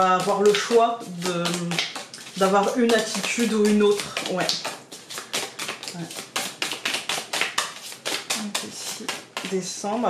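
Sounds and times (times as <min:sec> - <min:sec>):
cards being shuffled: 0:00.0 - 0:09.6.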